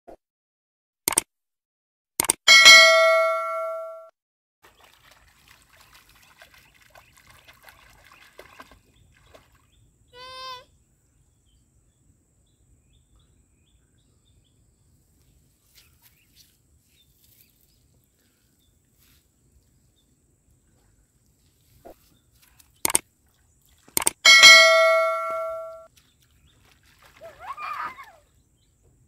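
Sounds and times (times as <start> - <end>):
notification bell ding: 2.5 - 4.1, 24.3 - 25.9.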